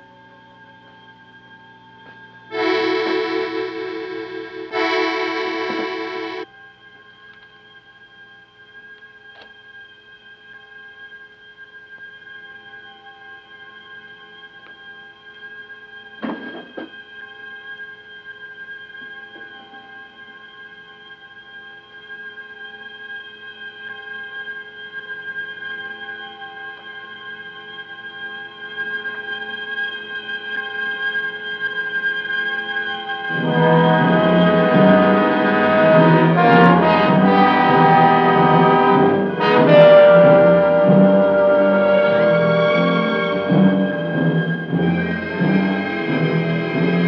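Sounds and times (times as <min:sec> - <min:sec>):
loud brass: 0:02.5 - 0:06.4, 0:33.3 - 0:47.0
orchestral held chord: 0:02.5 - 0:06.5, 0:33.3 - 0:47.0
sharp orchestral hit: 0:33.3 - 0:47.0.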